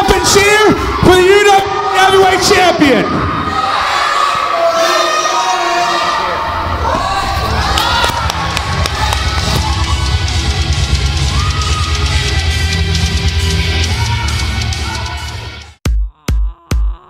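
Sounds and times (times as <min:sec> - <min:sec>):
crowd shouting and cheering: 0:00.0 - 0:15.8
heavy metal music over loudspeakers: 0:09.4 - 0:15.8.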